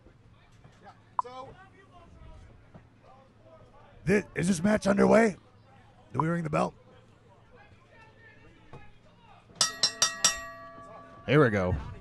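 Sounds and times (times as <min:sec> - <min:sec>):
ring bell struck: 0:09.6 - 0:11.4.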